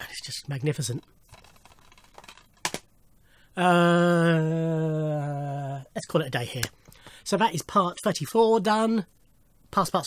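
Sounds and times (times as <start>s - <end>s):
plastic case being handled: 1.3s - 2.9s.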